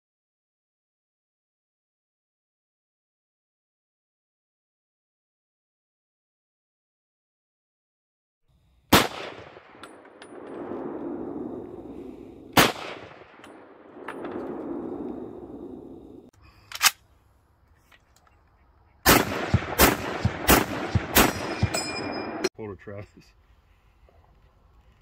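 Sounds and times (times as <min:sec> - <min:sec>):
rifle shots with rolling echo: 0:08.9 - 0:17.0, 0:19.0 - 0:22.5
metallic ring of ejected clip: 0:21.3 - 0:22.5.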